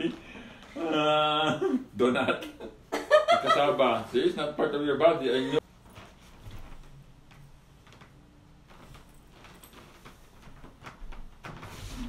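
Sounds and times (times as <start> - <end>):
soft movement noises: 5.2 - 12.0.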